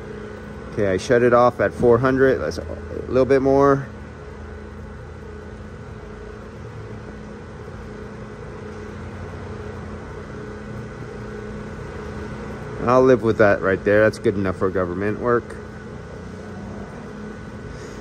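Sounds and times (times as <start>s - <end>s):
low machine hum: 0.0s - 18.0s.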